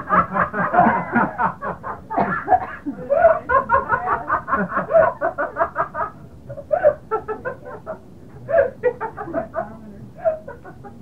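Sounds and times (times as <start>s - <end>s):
person chuckling: 0.7s - 5.2s.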